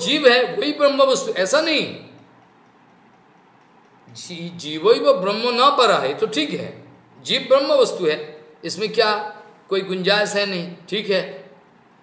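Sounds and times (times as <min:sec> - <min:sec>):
man speaking: 0:00.0 - 0:02.2, 0:04.1 - 0:11.5
faint room noise: 0:00.0 - 0:12.0.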